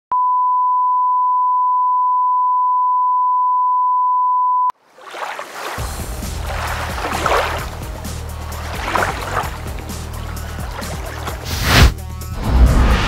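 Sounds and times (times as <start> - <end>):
rushing splashing whoosh: 5.0 - 13.0.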